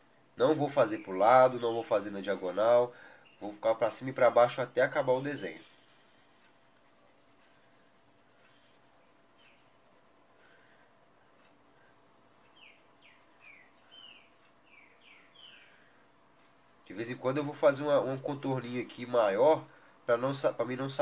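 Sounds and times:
pencil shading paper: 0:00.0 - 0:21.0.

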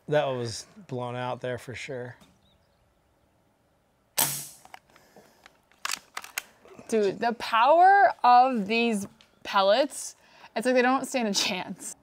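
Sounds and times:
air rifle shot: 0:04.2 - 0:04.8.

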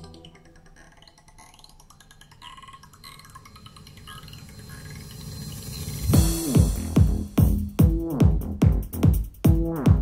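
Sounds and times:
electronic track breakdown: 0:00.0 - 0:10.0.

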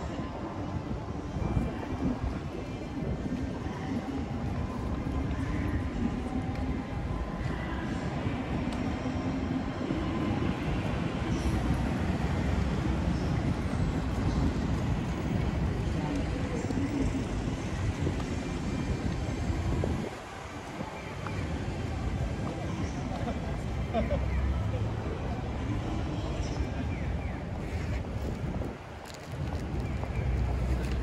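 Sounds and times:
rumble of passing vehicles: 0:00.0 - 0:31.0.

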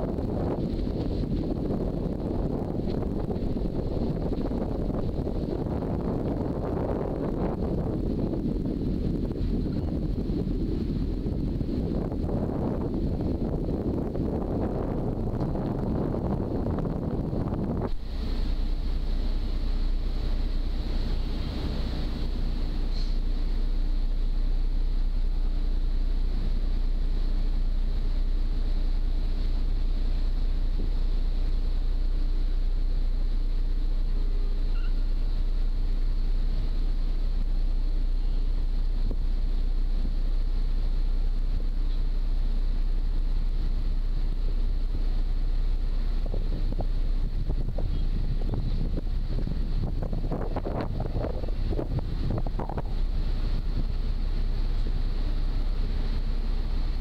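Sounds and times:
faint steady hum: 0:00.0 - 0:57.0
ferry engines droning: 0:00.0 - 0:57.0
wind on microphone: 0:00.0 - 0:57.0.

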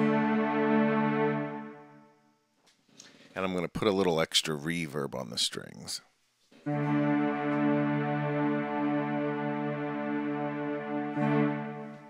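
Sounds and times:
synthesizer string pad chord: 0:00.0 - 0:02.3, 0:06.7 - 0:12.0.

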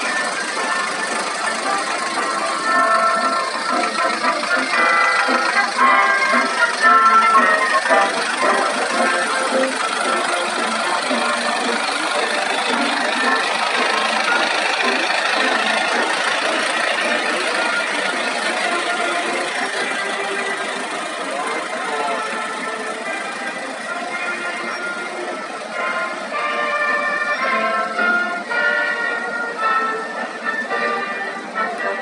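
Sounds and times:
music over horn loudspeakers: 0:00.0 - 0:32.0
vehicle engine noise: 0:00.0 - 0:32.0.

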